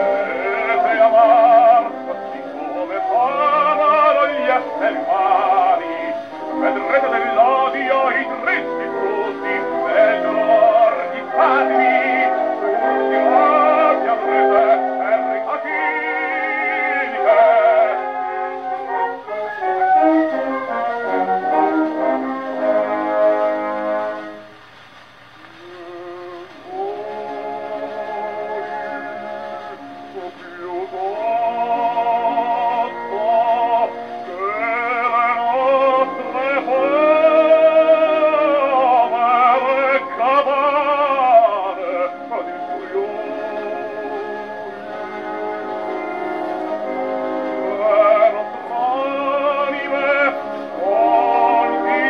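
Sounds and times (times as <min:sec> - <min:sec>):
baritone singing with vibrato: 0:00.0 - 0:24.6, 0:25.3 - 0:52.0
orchestral accompaniment: 0:00.0 - 0:52.0.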